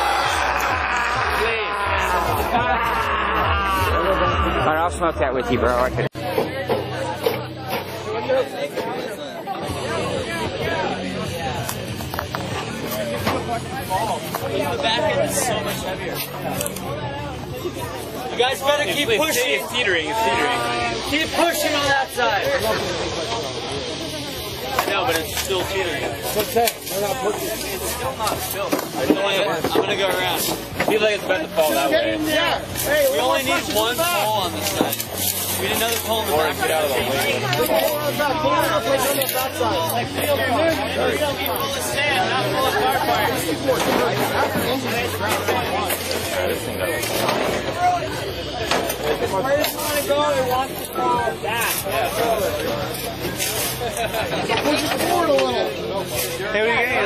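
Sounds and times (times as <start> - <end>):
people talking indistinctly: 0.0 - 57.0.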